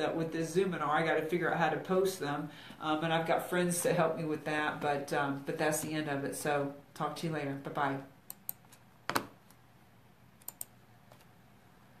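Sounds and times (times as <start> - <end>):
computer keyboard clicks: 10.4 - 11.3.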